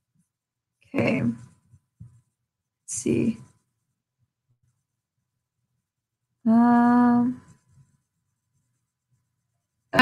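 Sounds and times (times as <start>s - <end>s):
woman speaking: 1.0s - 1.5s, 2.9s - 3.5s, 6.5s - 7.5s.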